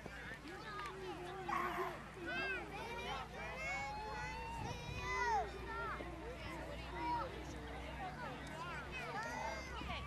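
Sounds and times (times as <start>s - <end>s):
children and adults talking: 0.0s - 10.0s.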